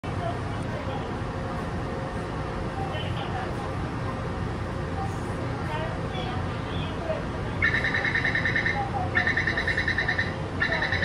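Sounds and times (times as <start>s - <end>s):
murmur of voices: 0.0s - 11.0s
train rumble and hum: 0.0s - 11.0s.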